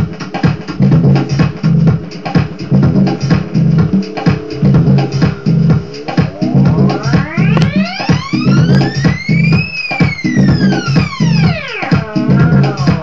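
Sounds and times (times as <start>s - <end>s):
electronic drum beat: 0.0s - 13.0s
siren-like pitched sample sweeping: 2.6s - 13.0s.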